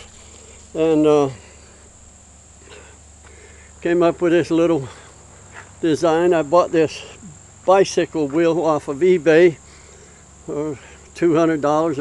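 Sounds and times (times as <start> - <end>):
insect chorus buzzing: 0.0 - 12.0
man speaking: 0.8 - 1.4, 3.8 - 5.0, 5.8 - 9.6, 10.5 - 12.0.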